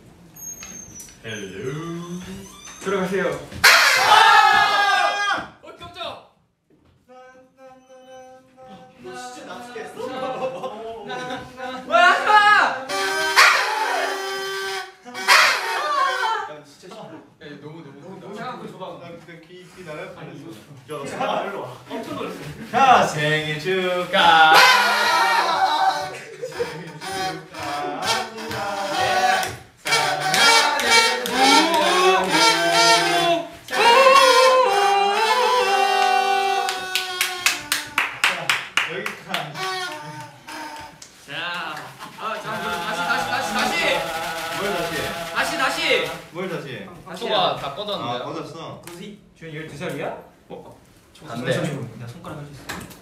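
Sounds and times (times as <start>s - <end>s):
short noisy party horn blast: 3.6s - 4.2s, 12.8s - 16.4s, 24.5s - 25.4s, 26.5s - 37.2s, 42.5s - 46.3s
party horn honking: 3.6s - 4.8s, 12.8s - 16.5s, 24.5s - 37.6s
group singing a held note: 24.1s - 36.7s, 42.0s - 46.3s
hands clapping: 27.6s - 34.3s, 36.0s - 46.1s.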